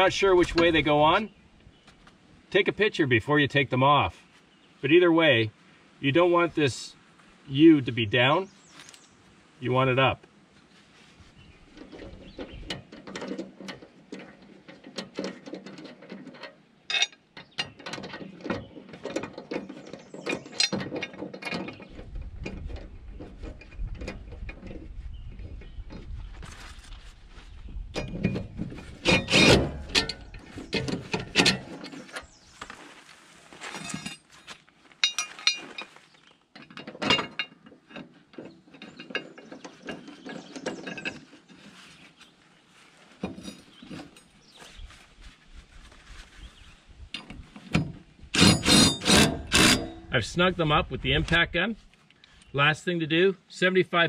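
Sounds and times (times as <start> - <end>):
metal parts clinking and rattling: 11.8 - 24.6, 28.0 - 32.3, 33.8 - 36.0, 36.6 - 41.6.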